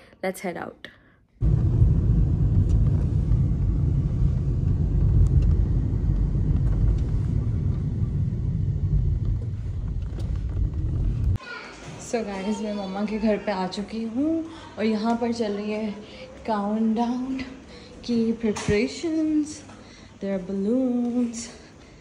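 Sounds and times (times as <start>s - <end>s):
car road rumble from inside: 1.4s - 11.4s.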